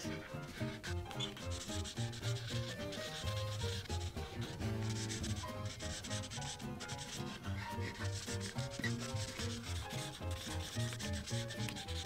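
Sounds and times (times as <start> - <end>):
marker scratching on paper: 0.0 - 12.0
quiet background music: 0.0 - 12.0.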